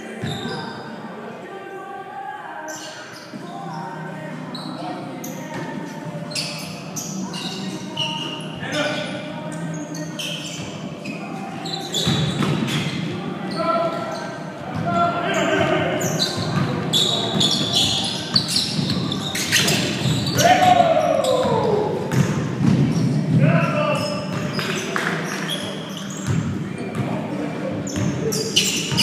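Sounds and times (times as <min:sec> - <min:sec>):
players calling out: 0:06.4 - 0:22.2.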